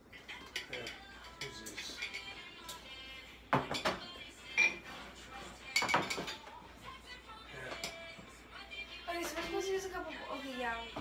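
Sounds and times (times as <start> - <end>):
kitchenware clinking: 0.1 - 2.9, 3.5 - 5.0, 5.6 - 6.6, 7.7 - 8.2.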